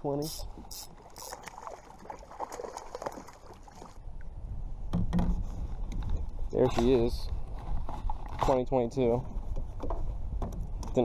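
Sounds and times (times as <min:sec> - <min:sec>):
water splashing around a kayak: 0:00.2 - 0:04.4
knocks from the boat: 0:04.9 - 0:05.5.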